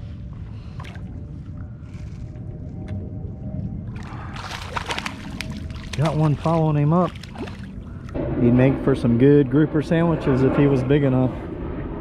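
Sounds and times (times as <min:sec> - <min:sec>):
steady low rumble: 0:00.0 - 0:12.0
fish splashing at water surface: 0:04.0 - 0:08.1.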